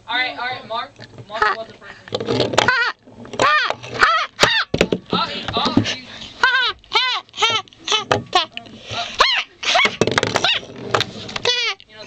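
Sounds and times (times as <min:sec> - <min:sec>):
high-pitched vocal squeals: 0:02.6 - 0:04.7, 0:06.4 - 0:10.7.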